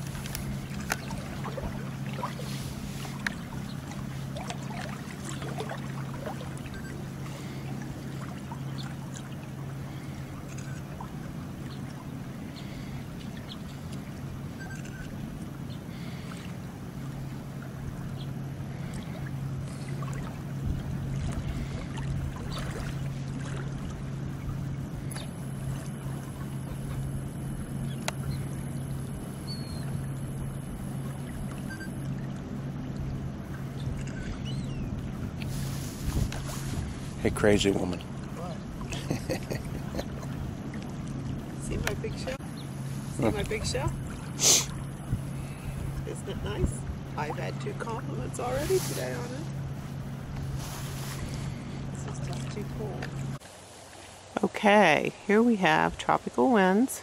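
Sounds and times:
sea water lapping and splashing: 0.0 - 57.0
steady low hum: 0.0 - 57.0.

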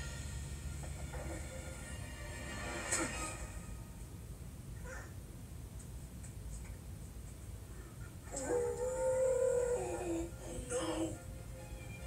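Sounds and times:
long howl-like cry: 8.3 - 11.1.

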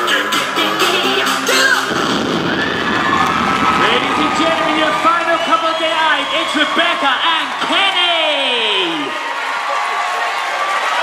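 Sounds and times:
upbeat dance music: 0.0 - 7.8
audience cheering: 1.6 - 11.0.

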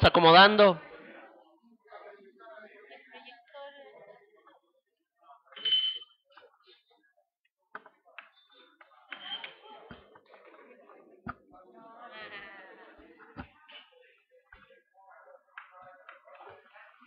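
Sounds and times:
faint indistinct voices: 0.8 - 17.0.

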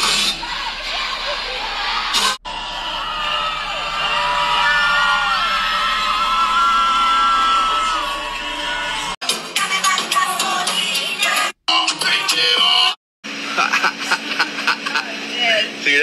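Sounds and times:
crowd whooping and cheering: 0.0 - 9.2
loud dance music: 0.0 - 13.0.

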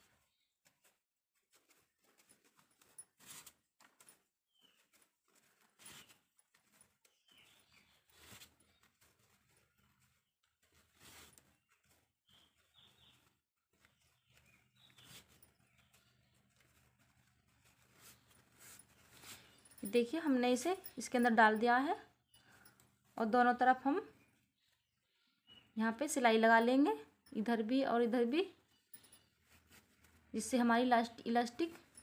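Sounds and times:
cloth rustling: 0.0 - 23.3, 26.4 - 32.0
woman speaking: 19.8 - 22.1, 23.2 - 24.1, 25.8 - 28.6, 30.4 - 31.8.

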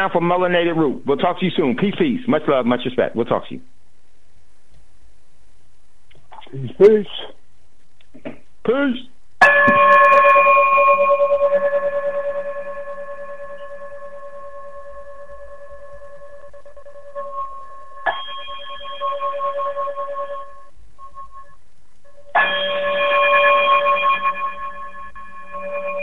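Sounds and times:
bell-like chime ringing: 9.4 - 21.3, 22.2 - 26.0.

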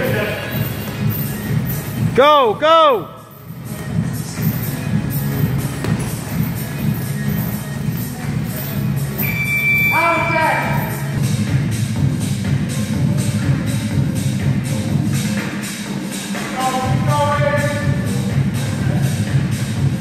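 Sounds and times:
music with steady beat: 3.2 - 9.7, 10.8 - 20.0.

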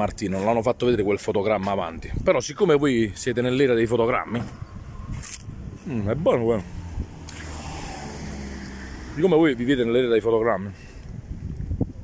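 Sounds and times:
vehicle engine hum: 3.8 - 11.8.

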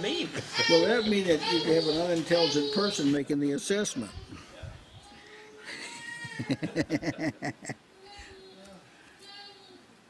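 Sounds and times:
man laughing: 5.7 - 7.8.

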